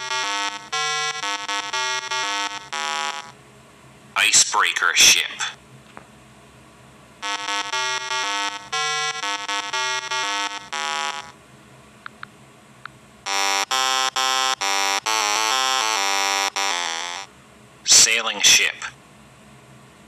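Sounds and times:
buzzy electronic tune: 0.0s - 3.3s, 7.2s - 11.3s, 13.3s - 17.3s.

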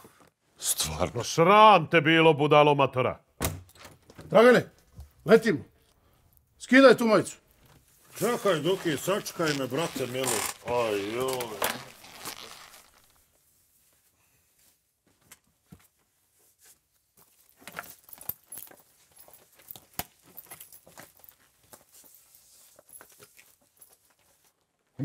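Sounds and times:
clothing rustling: 7.6s - 24.9s.

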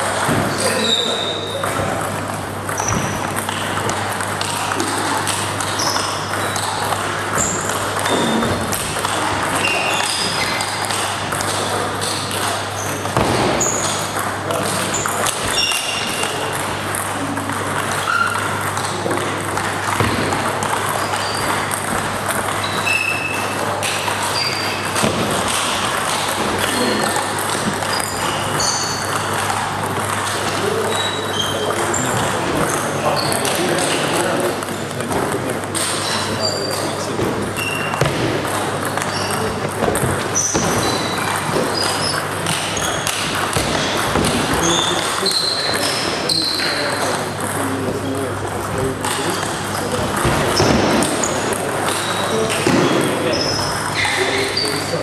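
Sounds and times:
table tennis balls pinging: 0.0s - 55.0s.

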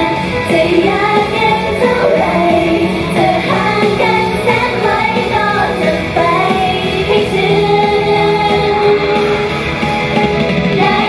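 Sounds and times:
women singing live pop music: 0.0s - 11.0s.

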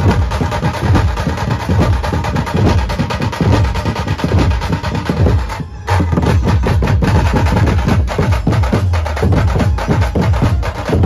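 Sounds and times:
band drumming fast rhythm: 0.0s - 11.0s.

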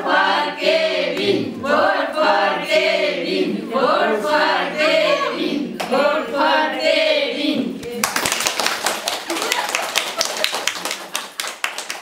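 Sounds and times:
people clapping: 7.8s - 12.0s.

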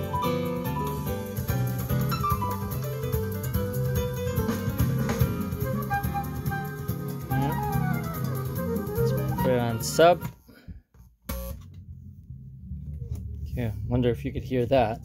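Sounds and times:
music through car speakers: 0.0s - 10.4s.

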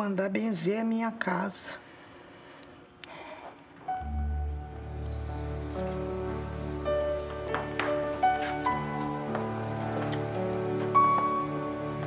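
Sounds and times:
gentle sustained soundtrack music: 3.8s - 12.0s.

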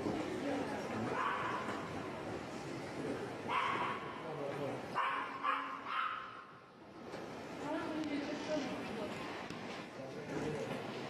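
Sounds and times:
steady background noise: 0.0s - 11.0s
dog barking: 3.5s - 4.1s, 5.0s - 6.5s.

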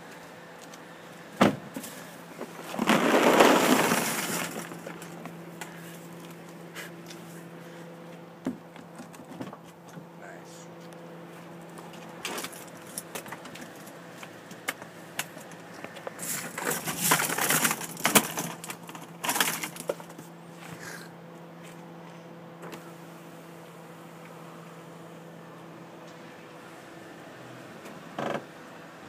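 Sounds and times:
steady low hum: 0.0s - 27.2s
plastic pieces rattling: 2.7s - 5.0s, 16.5s - 20.0s.

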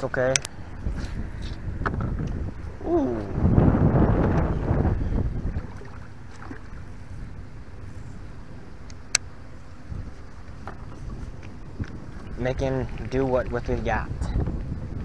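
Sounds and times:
wind buffeting microphone: 0.5s - 15.0s.

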